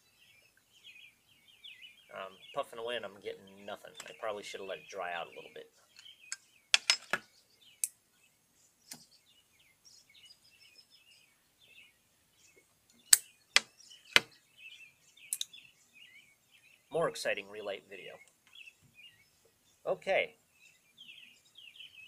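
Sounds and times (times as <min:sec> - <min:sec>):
faint birds chirping: 0:00.0 - 0:22.0.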